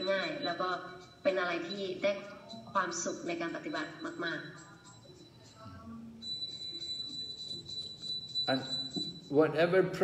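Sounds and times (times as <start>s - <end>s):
high-pitched steady tone: 0.0s - 9.9s.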